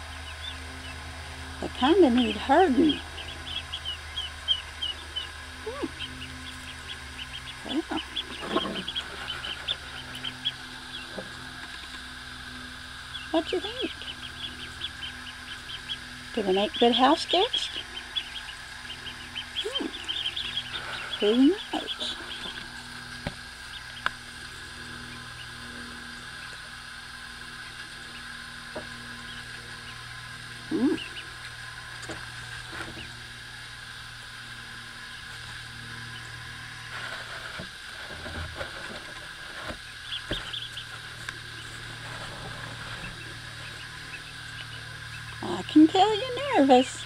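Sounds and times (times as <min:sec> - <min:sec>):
ducklings peeping: 0:00.0 - 0:47.0
steady background hum: 0:00.0 - 0:47.0.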